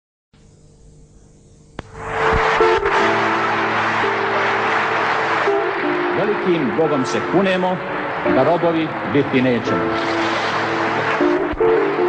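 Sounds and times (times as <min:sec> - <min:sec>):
music with held chords: 0:00.4 - 0:12.0
loud rushing noise: 0:01.8 - 0:12.0.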